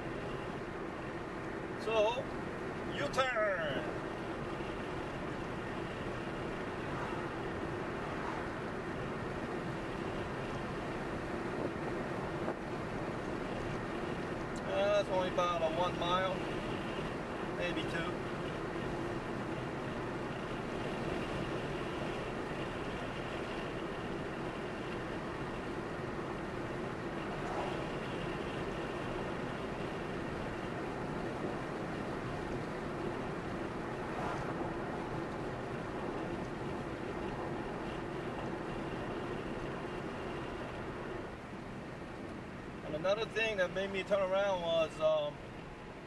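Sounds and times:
car driving inside cabin: 0.0s - 43.4s.

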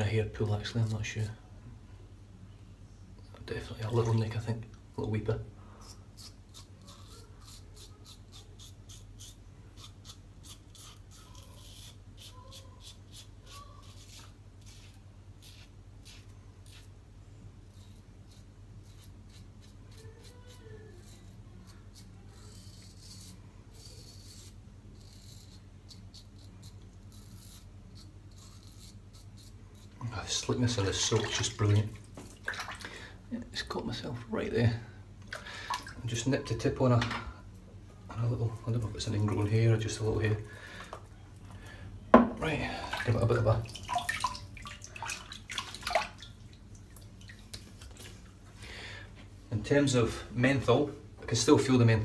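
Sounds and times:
razor scraping stubble: 5.8s - 17.0s, 17.6s - 32.3s.

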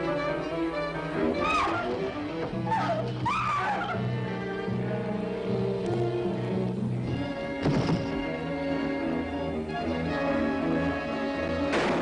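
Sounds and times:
dramatic orchestral music: 0.0s - 12.0s
heavy thud: 7.6s - 8.2s.

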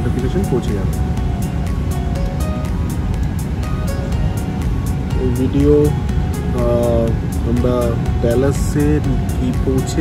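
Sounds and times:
background music with steady beat: 0.0s - 10.0s
low steady rumble: 0.0s - 10.0s.

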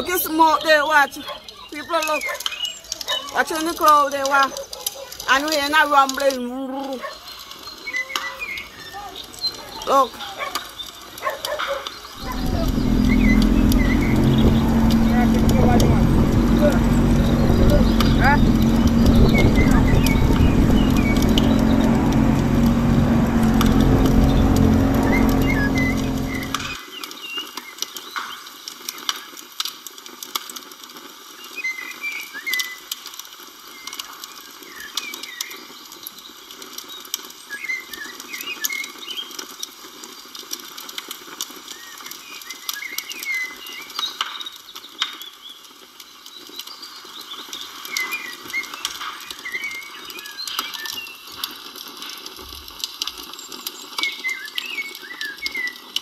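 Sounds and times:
wind: 0.0s - 56.0s
birds chirping: 0.1s - 3.7s, 6.9s - 26.8s
water noise: 12.1s - 26.8s
small boat motor running: 12.2s - 26.8s.

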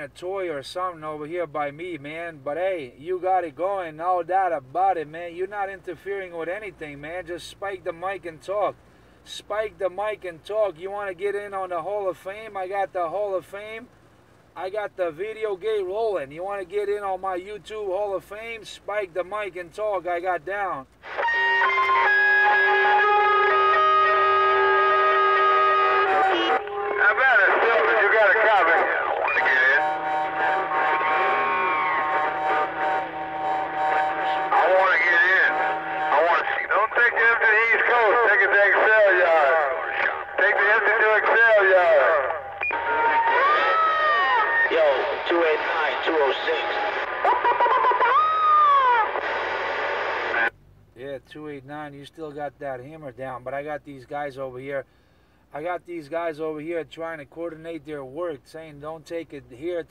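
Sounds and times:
held steady tones over radio: 21.0s - 50.5s
rising and falling whoops: 42.8s - 44.7s, 48.0s - 49.2s.

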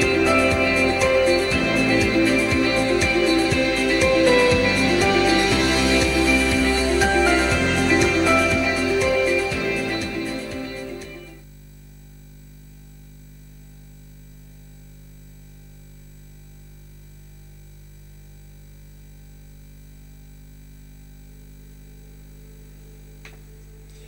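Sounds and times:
music: 0.0s - 11.4s, 22.4s - 24.0s
low electrical hum: 0.0s - 24.0s.

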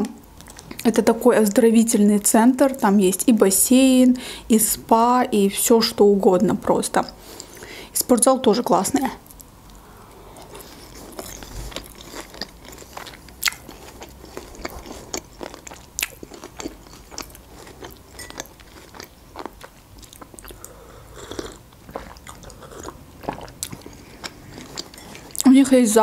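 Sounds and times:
soft chewing crunches: 0.2s - 1.0s, 7.1s - 7.7s, 9.2s - 25.5s.

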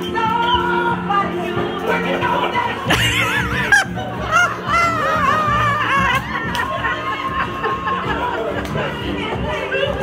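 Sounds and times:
music playing: 0.0s - 10.0s
high wavering vocal cries: 2.9s - 7.2s.

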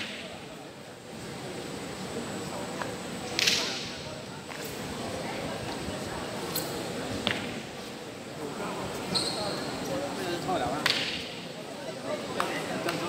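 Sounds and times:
murmur of voices: 0.0s - 13.0s.

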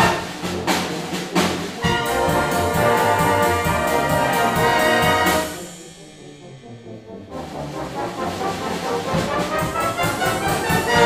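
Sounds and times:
brass band playing: 0.0s - 11.0s.

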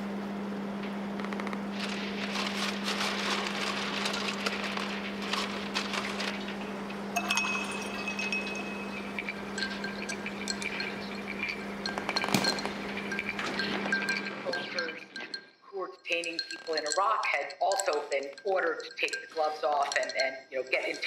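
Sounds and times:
steady low hum: 0.0s - 21.0s
glass clinking and rattling: 7.2s - 21.0s.

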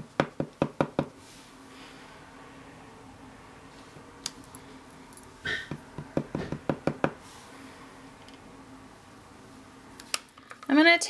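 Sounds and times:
rubber stamp knocking on ink pad: 0.2s - 1.1s, 5.5s - 7.2s.

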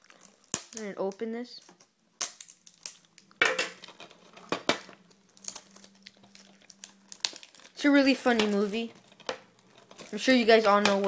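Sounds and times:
plastic shrink wrap crinkling: 0.0s - 11.0s.

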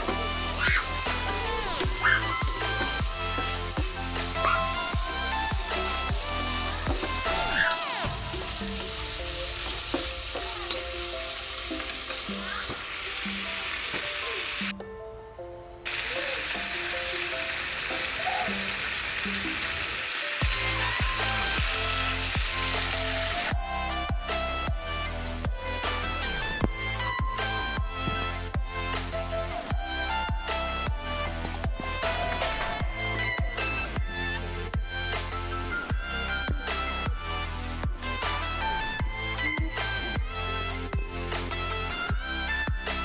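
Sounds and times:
background music: 0.0s - 43.0s
food sizzling in a wok: 0.4s - 14.7s, 15.9s - 24.7s.

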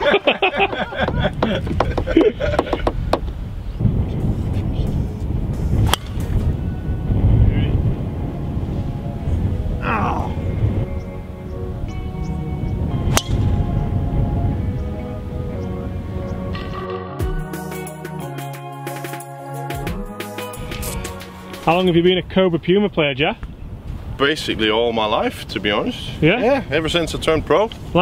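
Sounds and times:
wind rumble on microphone: 0.0s - 16.8s, 20.6s - 28.0s
background music: 5.4s - 22.2s
golf driver striking ball: 5.8s - 6.5s, 13.1s - 13.5s.

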